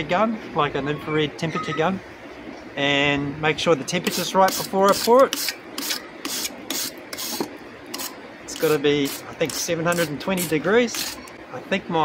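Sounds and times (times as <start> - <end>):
hand brush scrubbing metal: 4.1 - 11.3.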